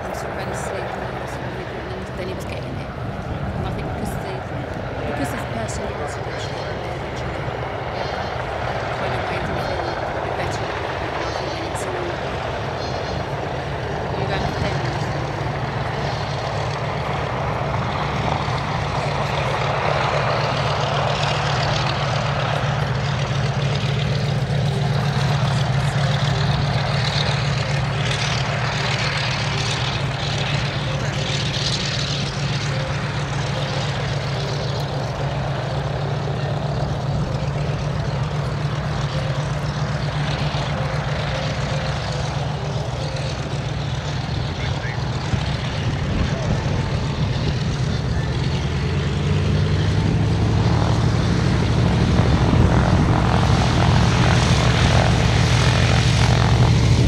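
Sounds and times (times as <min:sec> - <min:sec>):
propeller aircraft engines droning: 0:00.0 - 0:57.0.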